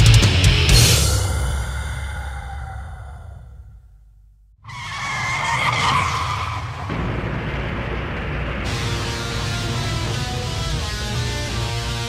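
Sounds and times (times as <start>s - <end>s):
heavy metal song: 0.0s - 3.1s, 6.9s - 12.0s
loud screeching squealing noise: 4.7s - 6.9s.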